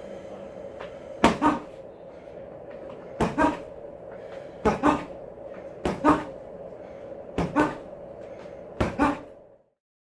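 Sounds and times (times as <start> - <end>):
boxing gloves thudding on punching bag: 1.2 - 1.6, 5.8 - 6.3, 8.8 - 9.2.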